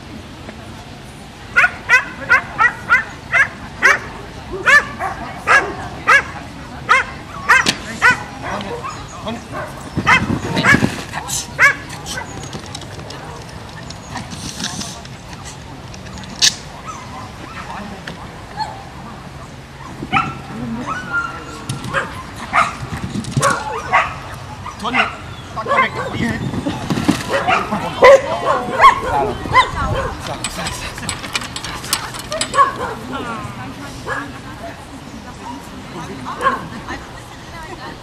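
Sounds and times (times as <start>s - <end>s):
dog barking: 1.6s - 6.3s, 6.9s - 10.8s, 21.9s - 22.8s, 23.4s - 26.2s, 27.3s - 30.2s, 32.5s - 33.1s.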